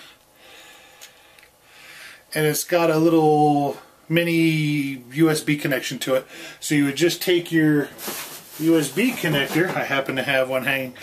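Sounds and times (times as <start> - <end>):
faint breathing through nose: 0.0 - 2.3, 6.2 - 6.6.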